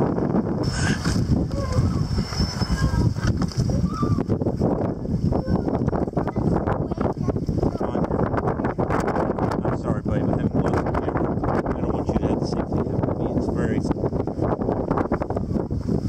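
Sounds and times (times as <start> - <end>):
wind buffeting microphone: 0.0 - 16.0
children's voices: 1.0 - 8.8.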